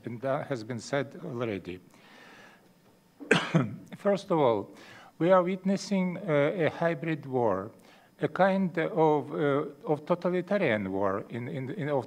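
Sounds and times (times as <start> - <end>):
man coughing: 3.2 - 3.8.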